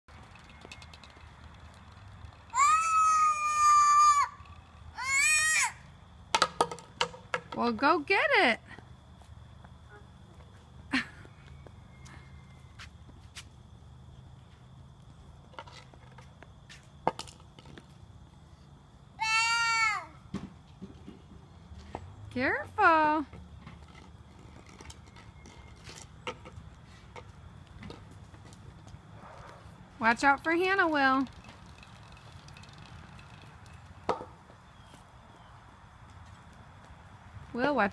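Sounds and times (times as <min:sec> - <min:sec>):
young child squealing: 0:02.5 - 0:05.9, 0:19.2 - 0:20.2.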